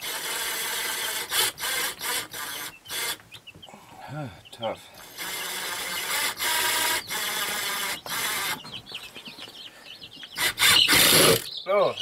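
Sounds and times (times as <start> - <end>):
cordless drill driving screw: 0.0 - 3.2, 5.0 - 8.6, 10.4 - 11.5.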